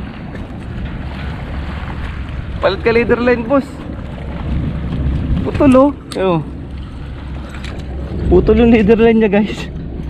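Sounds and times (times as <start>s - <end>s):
wind and sea rumble: 0.0s - 10.0s.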